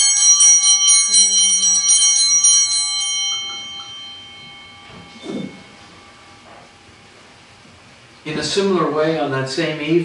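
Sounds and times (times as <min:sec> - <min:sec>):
small bells ringing: 0:00.0 - 0:07.2.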